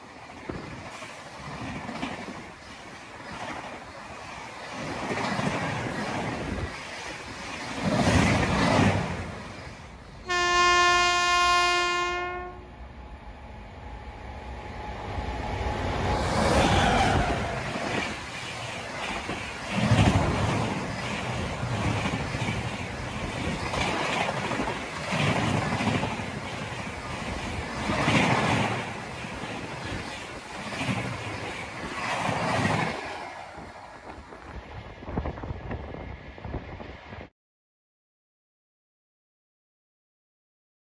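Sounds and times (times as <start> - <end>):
train wheels clattering on rails: 0.0 - 9.8, 16.5 - 34.6
train horn blast: 10.2 - 12.8.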